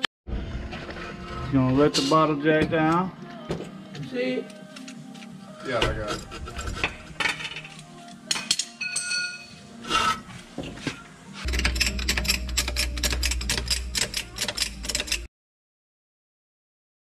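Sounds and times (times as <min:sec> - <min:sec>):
steel tools clinking on metal: 0:07.2 - 0:10.2, 0:11.5 - 0:15.3
low hum: 0:11.5 - 0:15.3.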